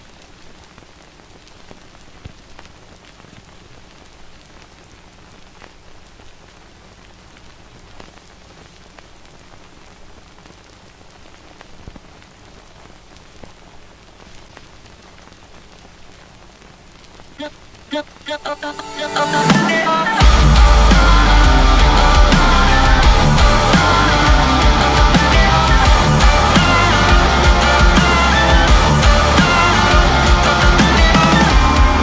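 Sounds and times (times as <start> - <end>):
crackles and clicks: 0.0 - 32.0
steady hiss: 0.0 - 32.0.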